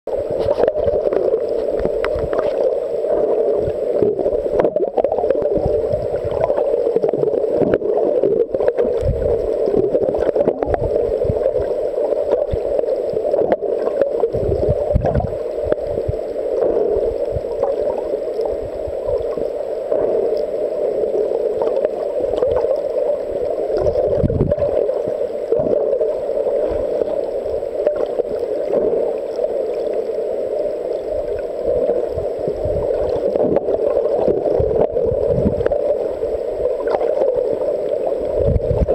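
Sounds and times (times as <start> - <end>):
muffled underwater hiss: 0.1 - 38.9.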